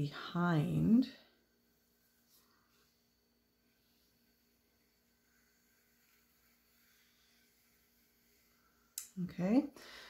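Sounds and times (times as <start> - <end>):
pencil scratching on paper: 3.9 - 8.9.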